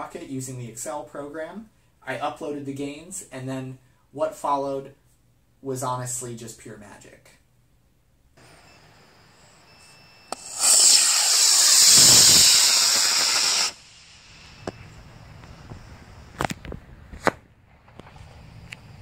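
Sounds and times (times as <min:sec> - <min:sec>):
rocket motor ignition click: 0:10.3 - 0:13.8
rocket motor loud hiss: 0:10.3 - 0:16.5
sharp pops: 0:10.3 - 0:17.4.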